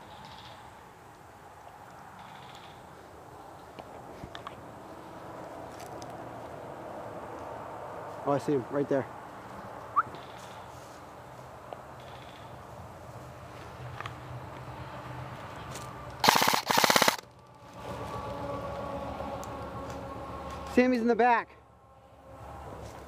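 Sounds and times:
airsoft rifle bursts: 16.2 - 17.2.

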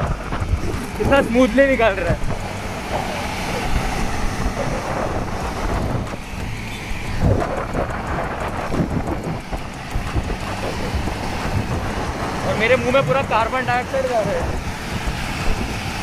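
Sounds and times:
vehicle rumble on road: 0.0 - 16.0
wind buffeting microphone: 0.0 - 16.0.

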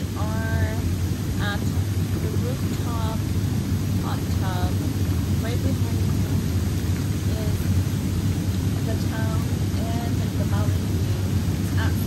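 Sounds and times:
hot tub jets bubbling water: 0.0 - 12.0.

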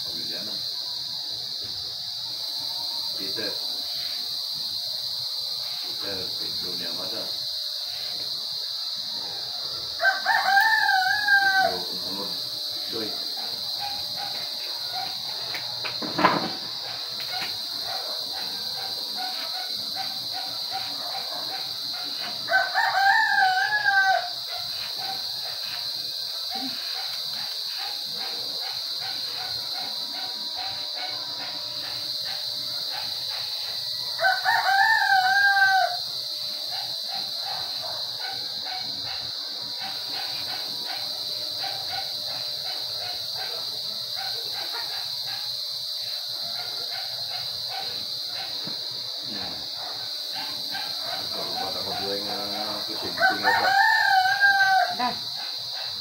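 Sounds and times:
steady high-pitched hum: 0.0 - 53.5
rooster crowing: 7.9 - 56.0.

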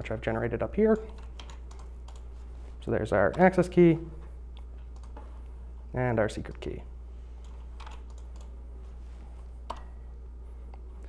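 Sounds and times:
steady low hum: 0.0 - 11.0
faint keyboard clicks: 7.4 - 8.6.

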